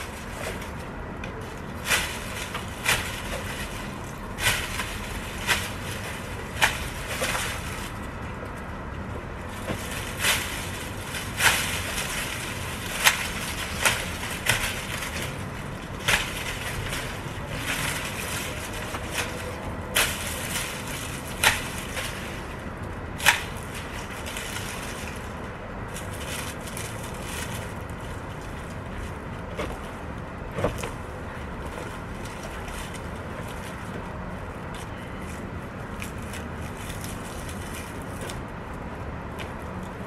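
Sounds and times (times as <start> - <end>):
loppers snipping stalks: 0.0 - 40.0
steady low rumble: 0.0 - 40.0.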